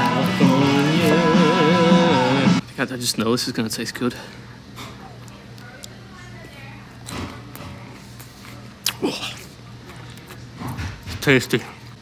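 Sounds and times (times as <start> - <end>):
faint murmur of voices: 4.1 - 12.0.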